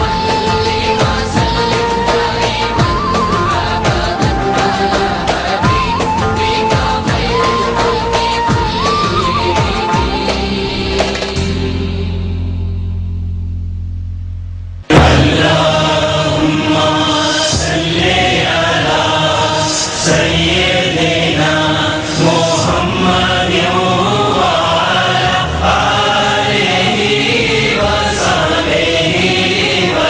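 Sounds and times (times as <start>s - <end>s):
male choir chanting over music: 0.0s - 8.2s, 14.9s - 30.0s
low droning tone: 11.4s - 16.8s.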